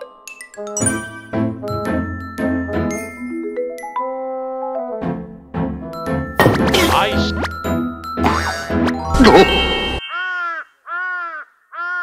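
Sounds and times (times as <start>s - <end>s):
crow cawing: 10.0s - 12.0s.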